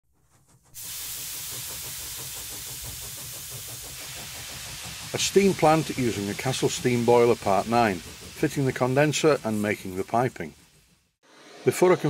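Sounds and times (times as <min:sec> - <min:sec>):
steady hiss: 0:00.4 - 0:12.0.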